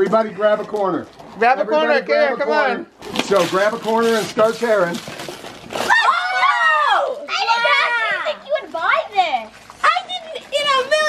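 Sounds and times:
wrapping paper tearing: 3.0 - 7.2
children shouting and squealing: 5.8 - 8.7.

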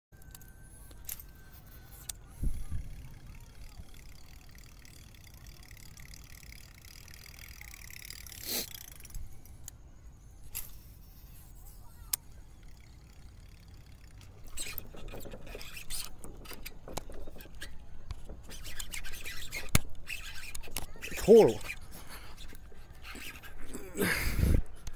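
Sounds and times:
clicks and knocks of fishing reel: 0.2 - 9.8, 10.4 - 23.9.

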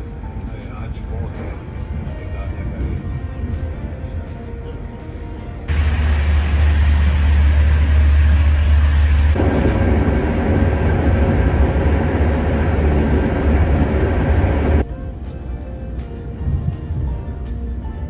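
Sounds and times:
train rumbling and rattling: 5.7 - 14.9.

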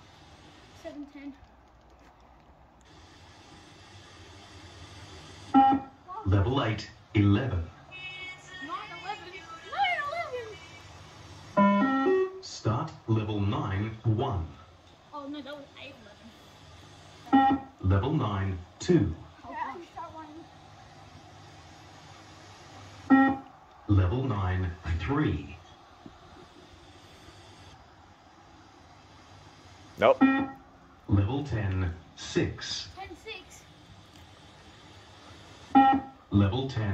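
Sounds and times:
faint outdoor ambience hiss: 0.0 - 36.9
voices: 0.7 - 3.5, 4.1 - 28.9, 29.9 - 36.9.

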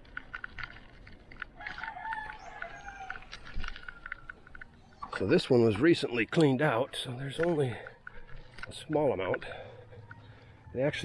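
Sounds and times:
rooster crowing: 1.6 - 4.3.

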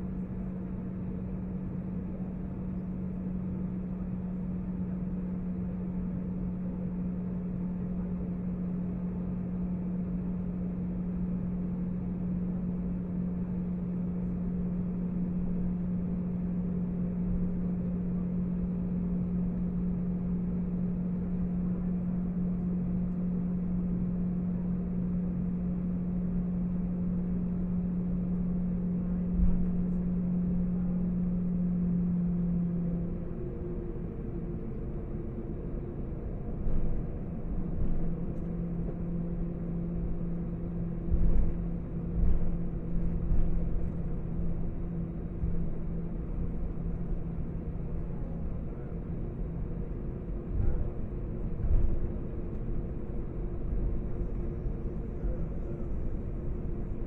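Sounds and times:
jet engines droning in cabin: 0.0 - 57.0.

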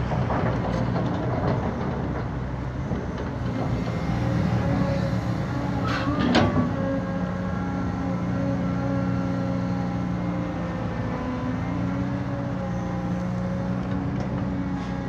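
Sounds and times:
excavator diesel engine running: 0.0 - 15.0.

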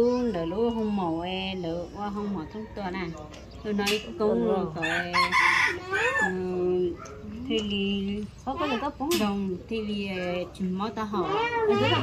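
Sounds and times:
women talking: 0.0 - 12.0
rooster crowing: 4.8 - 6.4.

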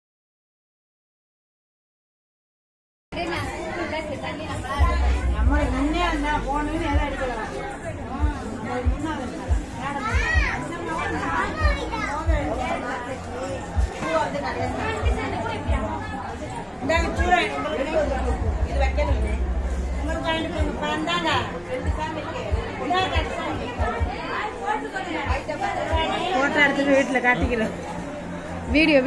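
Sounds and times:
crowd chatter: 3.1 - 29.0.

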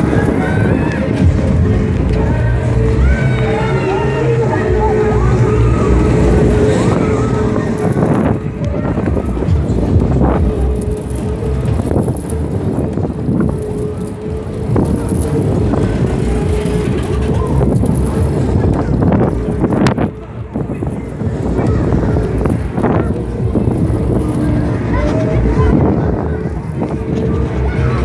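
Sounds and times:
fairground music: 0.0 - 28.0
machinery rumble and hum: 0.0 - 28.0.

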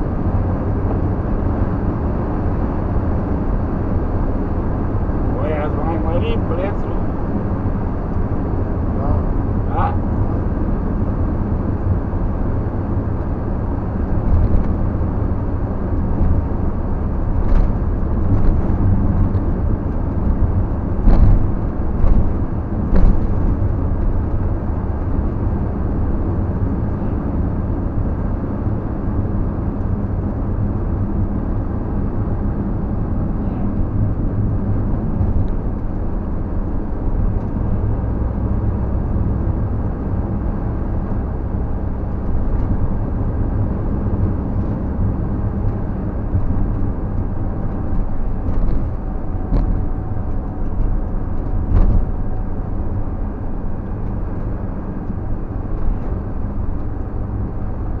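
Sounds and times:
engine and road noise in cab: 0.0 - 58.0.

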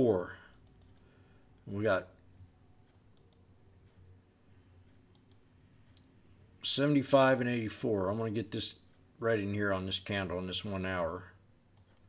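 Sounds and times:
computer mouse clicks: 0.5 - 1.1, 2.9 - 3.5, 4.9 - 6.1, 11.8 - 12.0.

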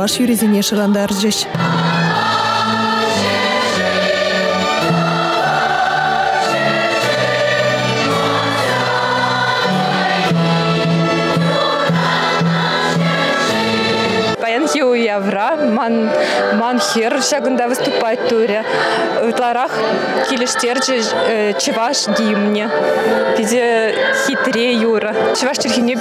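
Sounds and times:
symphony orchestra: 0.0 - 18.6
massed choir singing: 0.0 - 26.0.

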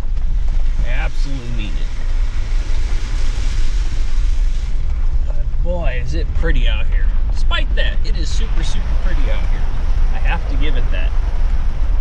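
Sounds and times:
engine and drivetrain rumble: 0.0 - 12.0
tyre and wind noise: 0.0 - 12.0.

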